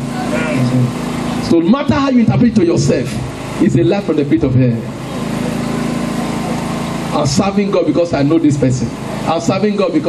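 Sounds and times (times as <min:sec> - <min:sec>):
loud buzzing drone: 0:00.0 - 0:10.0.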